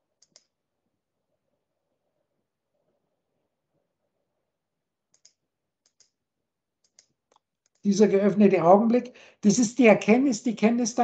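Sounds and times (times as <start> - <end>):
computer mouse clicks: 0.2 - 0.6, 5.1 - 6.2, 6.8 - 7.8
man speaking: 7.8 - 11.0.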